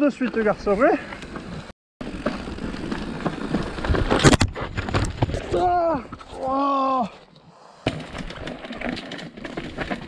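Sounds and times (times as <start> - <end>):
bike rattling and clicking: 0.0 - 5.5, 7.8 - 10.0
tyre and wind noise: 0.0 - 10.0.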